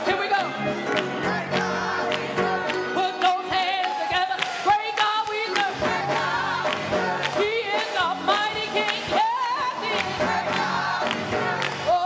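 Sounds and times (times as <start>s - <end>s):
gospel choir singing: 0.0s - 12.0s
hands clapping: 0.2s - 12.0s.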